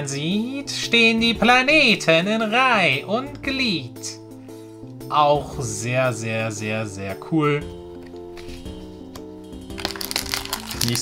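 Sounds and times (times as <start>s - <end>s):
background music with held notes: 0.0s - 11.0s
foil wrapper crinkling: 9.7s - 11.0s.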